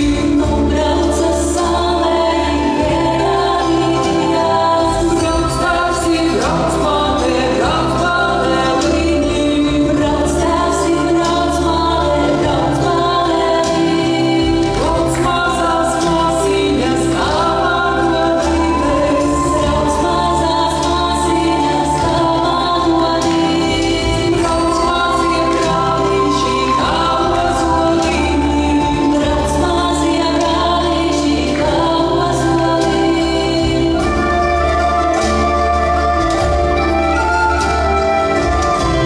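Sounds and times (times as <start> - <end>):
choir singing folk-dance music: 0.0 - 39.0.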